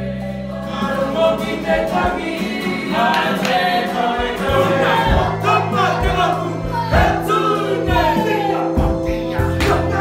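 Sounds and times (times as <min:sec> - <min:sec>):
people singing together: 0:00.0 - 0:10.0
regular beats: 0:00.8 - 0:10.0.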